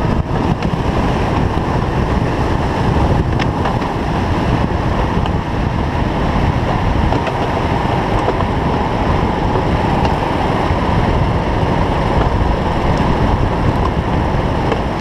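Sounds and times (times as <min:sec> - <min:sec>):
go-kart engine running: 0:00.0 - 0:15.0
wind rushing on microphone: 0:00.0 - 0:15.0.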